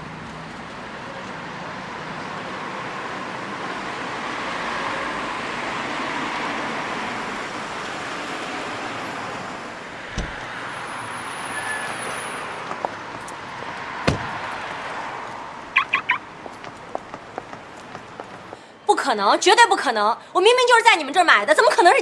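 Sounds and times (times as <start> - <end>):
passing cars hiss: 2.0 - 12.6
thump: 10.1 - 10.5, 14.1 - 14.4.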